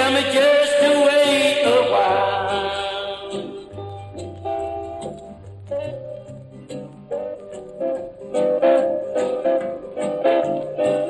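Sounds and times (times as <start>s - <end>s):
singing with vibrato: 0.0s - 3.8s
bass line: 0.0s - 11.0s
guitar: 0.0s - 11.0s.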